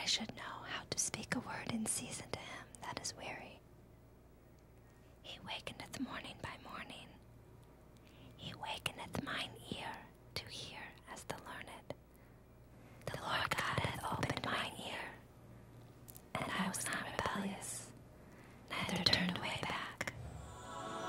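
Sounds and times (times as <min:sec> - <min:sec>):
person whispering: 0:16.4 - 0:17.9, 0:18.7 - 0:21.0.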